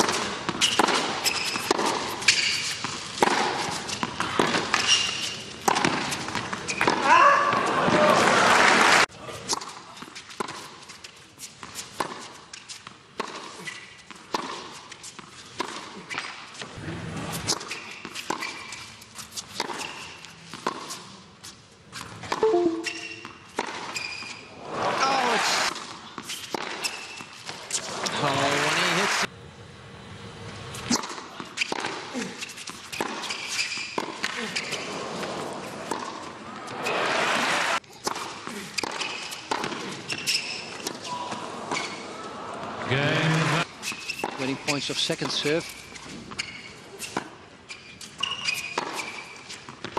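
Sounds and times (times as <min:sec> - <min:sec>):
tennis ball struck by rackets: 0:00.0 - 0:04.9, 0:05.6 - 0:07.7, 0:19.5 - 0:21.0, 0:22.3 - 0:24.0, 0:25.7 - 0:27.6, 0:33.0 - 0:34.4, 0:35.8 - 0:37.0, 0:38.0 - 0:41.0, 0:48.7 - 0:49.9
people shouting: 0:07.0 - 0:09.0, 0:24.9 - 0:25.7, 0:42.8 - 0:43.6
crowd cheering and applause: 0:07.5 - 0:09.1, 0:28.1 - 0:29.3, 0:36.7 - 0:37.8, 0:42.3 - 0:43.6
ball bouncing: 0:22.2 - 0:23.8.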